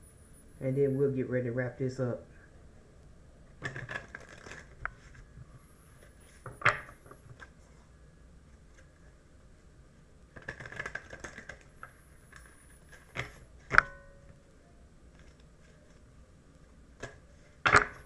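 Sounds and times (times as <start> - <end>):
cards being shuffled: 3.6 - 5.2, 10.4 - 11.6.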